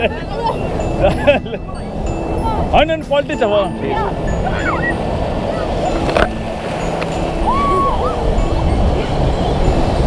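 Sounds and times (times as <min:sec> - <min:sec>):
surf washing in: 0:00.0 - 0:10.0
wind buffeting microphone: 0:00.0 - 0:10.0.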